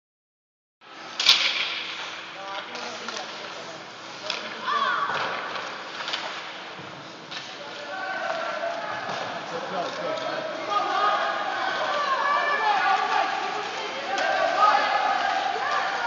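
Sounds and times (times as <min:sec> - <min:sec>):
voices echoing in ice rink: 0:00.8 - 0:16.0.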